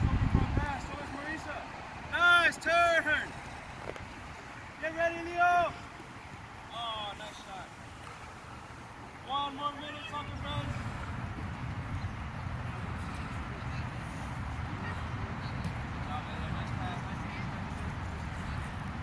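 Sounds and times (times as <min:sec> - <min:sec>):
wind buffeting microphone: 0:00.0 - 0:02.2.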